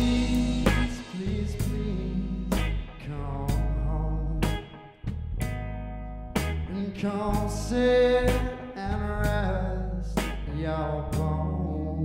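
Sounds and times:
drum or cymbal hits: 0.0 - 3.1
man singing: 0.0 - 4.8, 6.6 - 12.0
blues band playing live: 0.0 - 11.7.

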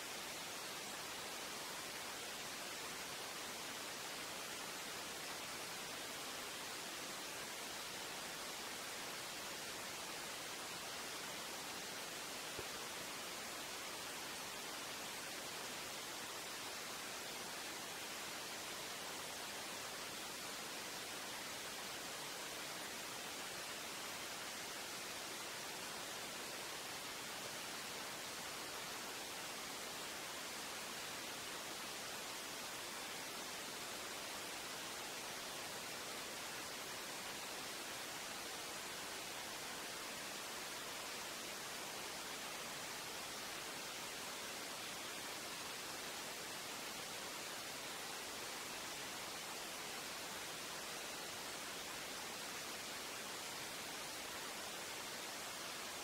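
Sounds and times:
steady high hiss: 0.0 - 56.0.

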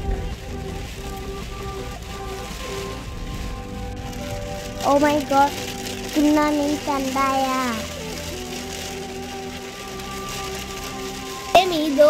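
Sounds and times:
music holding a steady note: 0.0 - 12.0
rain on a car windshield: 0.0 - 12.0
person talking: 4.8 - 8.0, 11.4 - 12.0.

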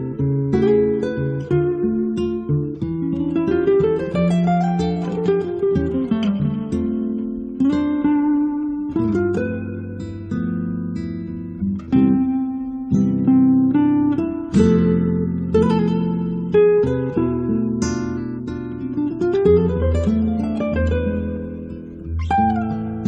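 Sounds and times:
acoustic guitar music: 0.0 - 23.0.

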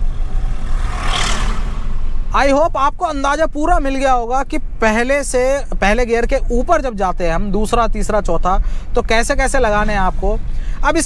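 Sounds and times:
passing tractor: 0.0 - 2.2
car engine and road rumble: 0.0 - 11.0.

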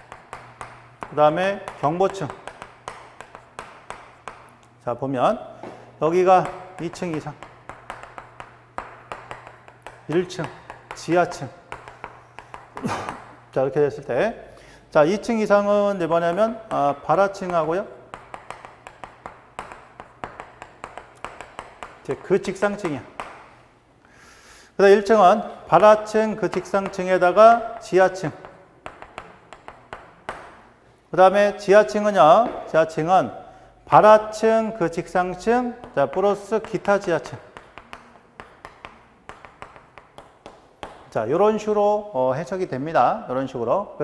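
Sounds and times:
chalk ticking on chalkboard: 0.0 - 4.8, 6.1 - 13.4, 15.2 - 23.5, 25.0 - 30.7, 34.0 - 41.2.

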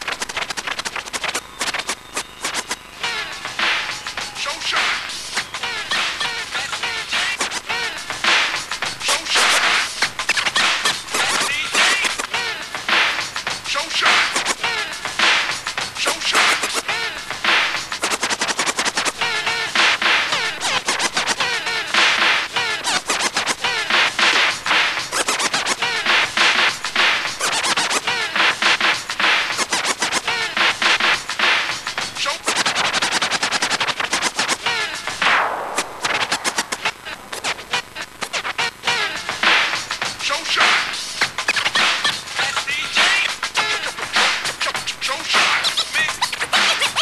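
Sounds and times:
vinyl record scratching: 0.0 - 47.0.

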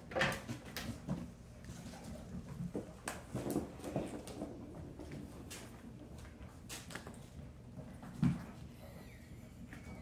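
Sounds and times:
kittens scampering on wooden floor: 0.1 - 10.0.

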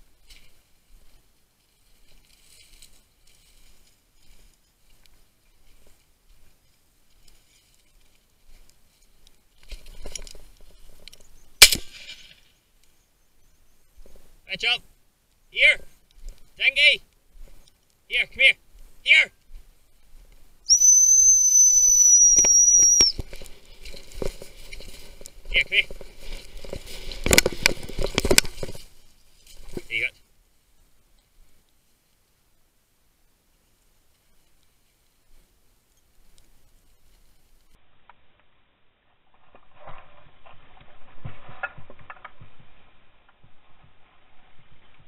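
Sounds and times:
footsteps through dry grass: 0.0 - 14.4, 15.8 - 20.7, 22.8 - 32.2, 33.9 - 37.8
high-pitched dog whistle blast: 20.7 - 23.2.

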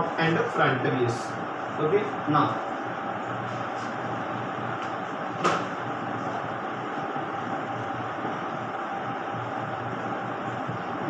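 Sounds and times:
steady hum and hiss: 0.0 - 11.0.

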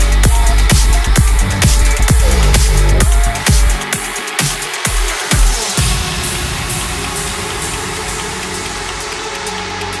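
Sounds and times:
sustained low drone: 1.7 - 3.2.

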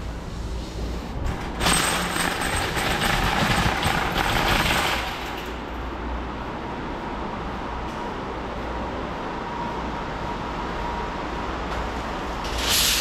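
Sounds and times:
metal shopping cart rattling: 1.3 - 5.6.

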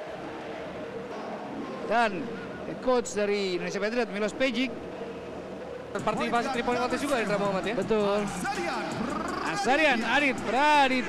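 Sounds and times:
arena room noise: 0.0 - 11.0
indistinct background voices: 0.0 - 11.0.

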